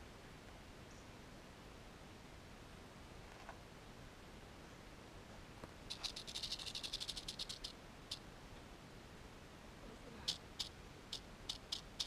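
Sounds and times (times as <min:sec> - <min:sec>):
rattlesnake tail rattling: 0:05.9 - 0:08.2, 0:10.3 - 0:12.0.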